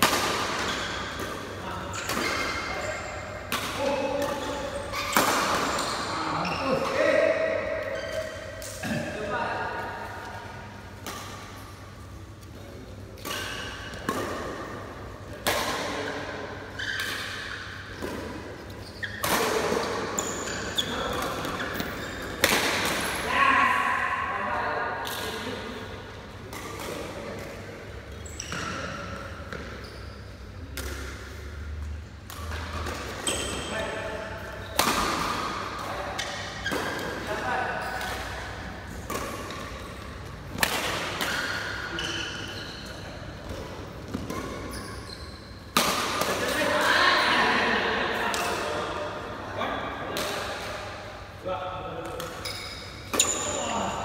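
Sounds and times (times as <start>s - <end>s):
shoe squeaks on court floor: 4.4s - 6.8s, 7.9s - 8.5s, 18.7s - 19.2s, 20.1s - 22.4s, 28.1s - 29.0s, 29.7s - 30.4s, 41.3s - 43.2s, 44.3s - 45.7s
rackets striking shuttlecock: 30.7s - 31.4s, 37.9s - 41.8s.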